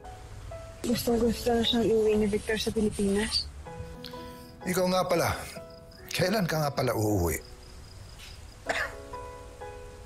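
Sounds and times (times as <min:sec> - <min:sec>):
soft background music: 0:00.0 - 0:10.0
person coughing: 0:08.7 - 0:09.0.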